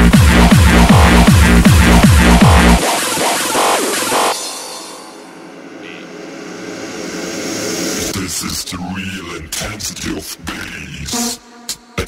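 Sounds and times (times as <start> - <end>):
steady droning sound effect: 2.3 - 8.6.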